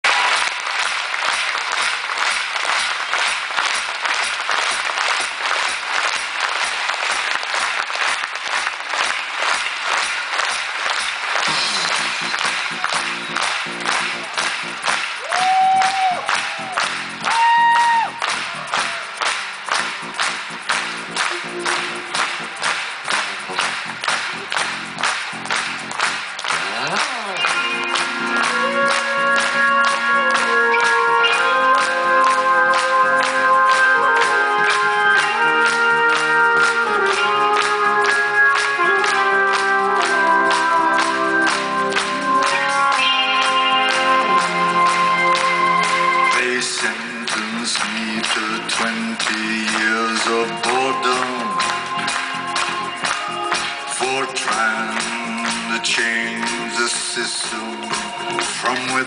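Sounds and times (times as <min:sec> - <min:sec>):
audience clapping in rhythm: 0:00.0 - 0:59.0.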